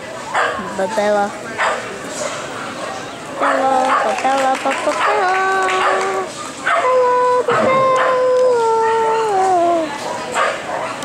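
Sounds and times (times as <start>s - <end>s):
dog howling: 5.0s - 9.8s.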